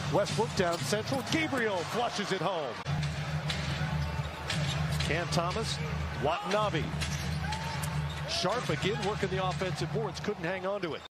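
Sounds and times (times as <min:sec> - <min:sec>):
low arena din: 0:00.0 - 0:11.0.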